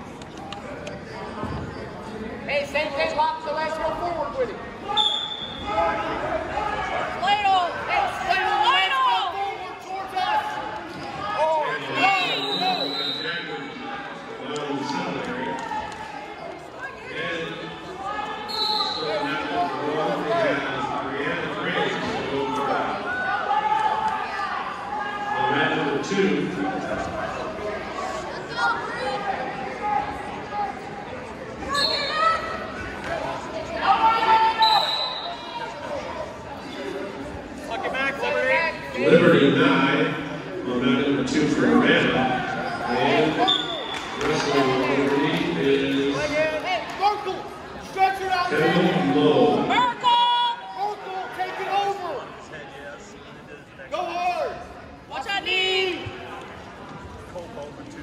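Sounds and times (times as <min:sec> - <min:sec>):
crowd chatter: 0:00.0 - 0:58.0.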